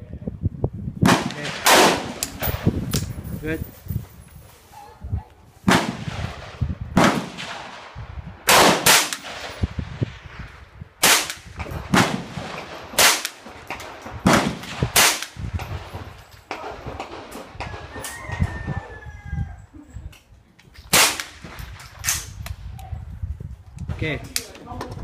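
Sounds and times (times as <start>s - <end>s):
rifle gunshots: 1.0s - 2.7s, 5.7s - 9.9s, 11.0s - 17.9s, 20.9s - 22.3s.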